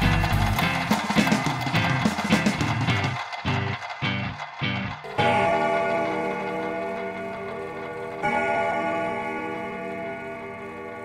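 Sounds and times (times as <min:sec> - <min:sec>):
electronic bell chord: 0:05.0 - 0:11.0.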